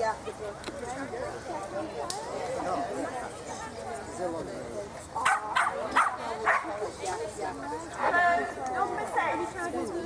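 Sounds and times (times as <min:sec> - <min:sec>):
people talking: 0:00.0 - 0:10.0
small dog barking: 0:05.2 - 0:06.7.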